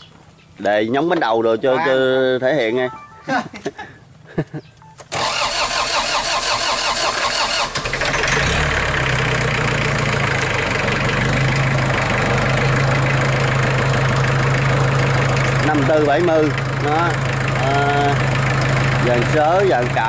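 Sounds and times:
starter motor cranking: 0:05.1 - 0:09.4
diesel engine idling: 0:05.1 - 0:20.0.

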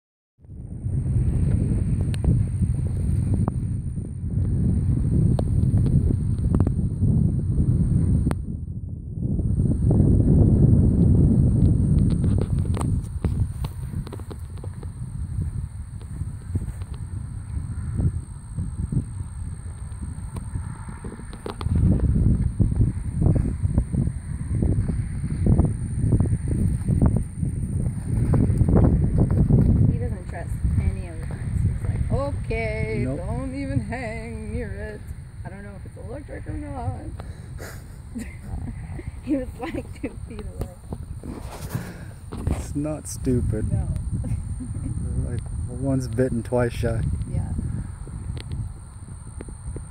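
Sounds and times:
wind buffeting microphone: 0:00.4 - 0:49.9.

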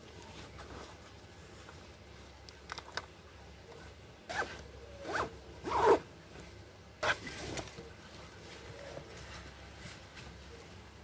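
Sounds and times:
zipper being pulled: 0:04.3 - 0:06.1, 0:07.0 - 0:07.6.

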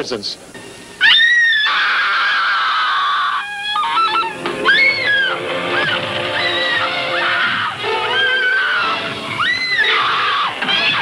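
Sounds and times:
woman screaming: 0:01.0 - 0:11.0.

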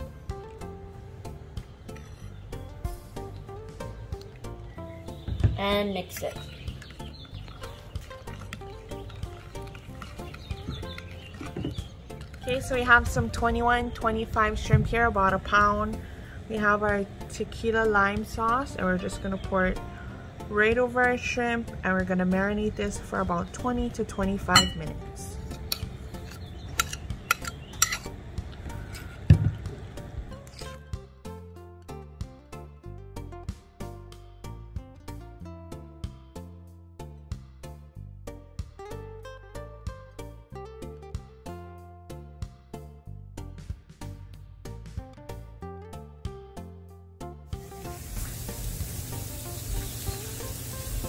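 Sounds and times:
background music with plucked notes: 0:00.0 - 0:51.0
spoon scraping ceramic bowl: 0:24.6 - 0:24.9, 0:25.5 - 0:28.2
shrimp sizzling on a grill: 0:47.6 - 0:51.0.

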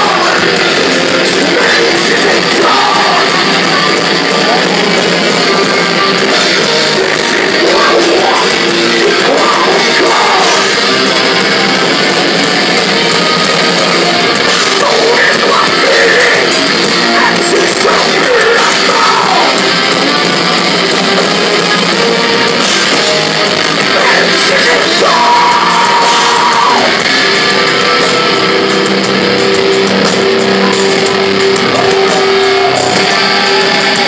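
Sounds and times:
metal band playing live: 0:00.0 - 0:34.0.

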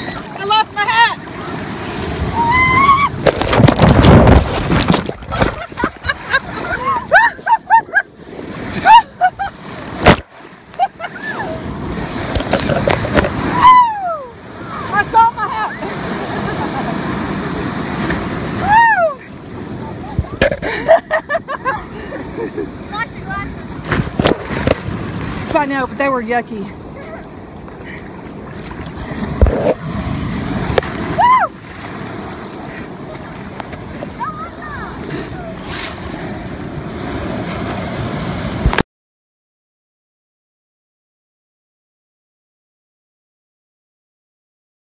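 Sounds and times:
surf splashing and rushing: 0:00.0 - 0:38.8
whoosh of water: 0:01.1 - 0:20.7
wind buffeting microphone: 0:01.2 - 0:07.1
person laughing shrilly: 0:05.5 - 0:08.0, 0:08.8 - 0:09.5.

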